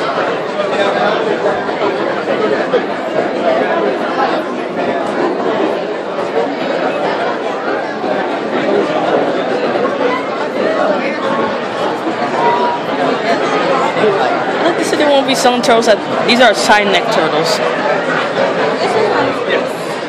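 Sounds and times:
crowd chatter indoors: 0.0 - 20.0.

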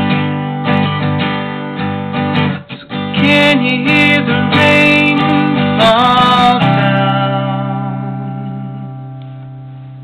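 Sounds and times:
acoustic guitar strummed chord: 0.0 - 10.0
person singing: 2.8 - 8.6.

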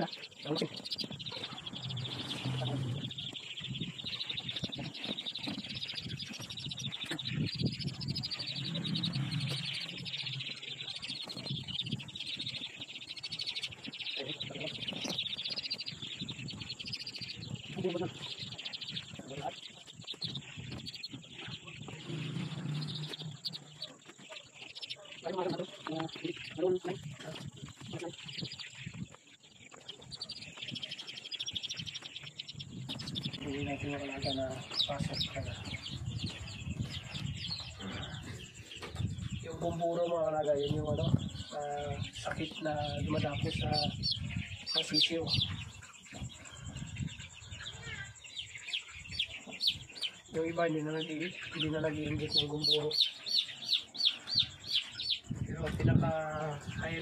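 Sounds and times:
chicks peeping: 0.0 - 57.0.

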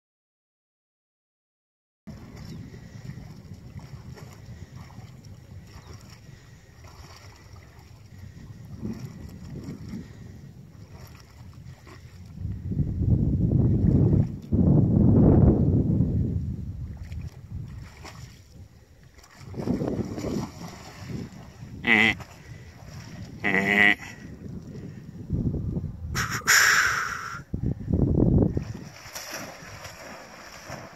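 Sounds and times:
wind buffeting microphone: 2.1 - 26.5, 27.2 - 30.9.

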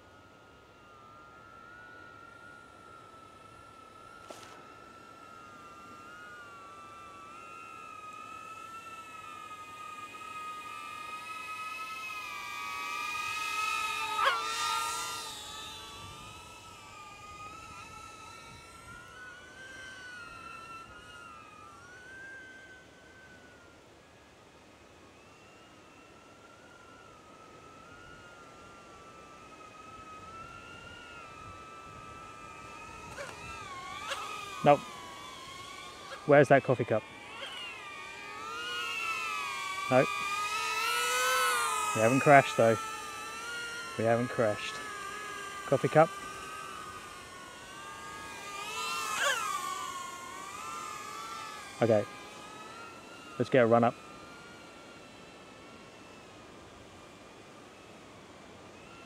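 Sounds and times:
drone propellers whining: 0.0 - 59.0.

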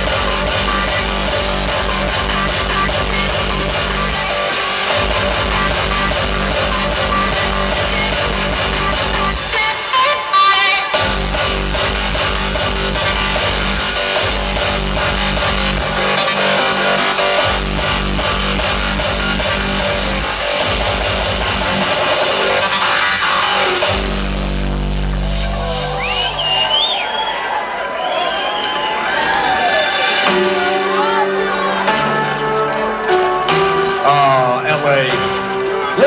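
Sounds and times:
loud hardstyle music: 0.0 - 27.1, 29.5 - 36.0
crowd voices: 25.3 - 36.0.

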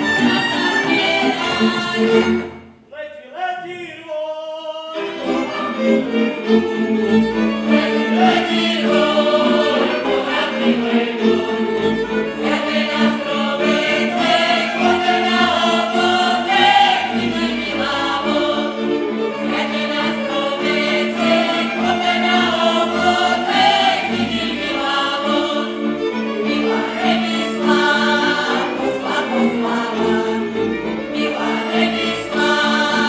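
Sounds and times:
group singing folk song: 0.0 - 2.7, 4.9 - 33.0
string band playing: 0.0 - 2.9, 4.9 - 33.0.

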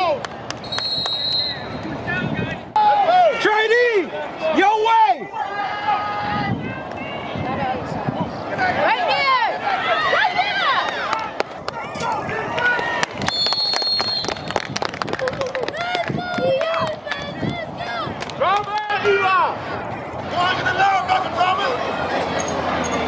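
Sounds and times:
spectators shouting and cheering: 0.0 - 23.0
referee whistle blast: 0.6 - 1.8.

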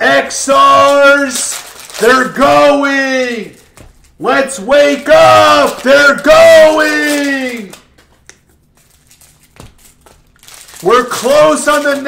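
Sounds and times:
man speaking loudly: 0.0 - 3.6, 4.2 - 7.8, 10.8 - 12.0
cellophane wrapper crinkling: 0.8 - 2.4, 5.4 - 12.0.

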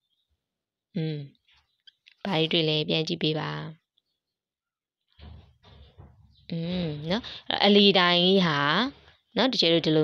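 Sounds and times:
person speaking: 2.0 - 3.8.

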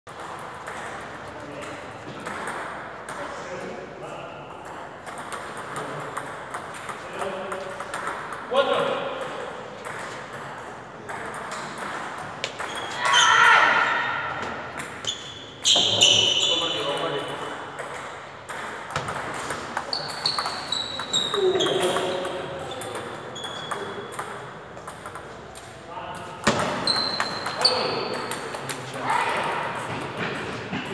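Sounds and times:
table tennis balls clicking: 4.6 - 8.5, 17.3 - 28.9
voices talking: 19.8 - 24.2.

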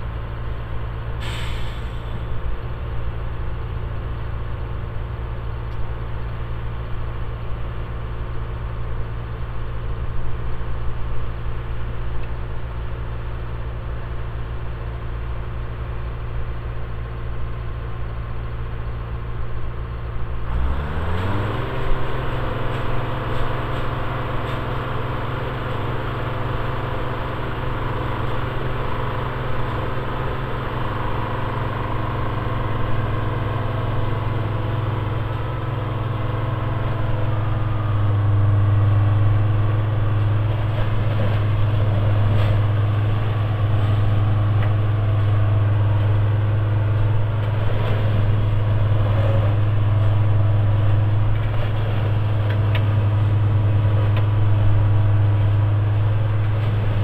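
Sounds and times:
diesel engine idling and revving: 0.0 - 57.0.

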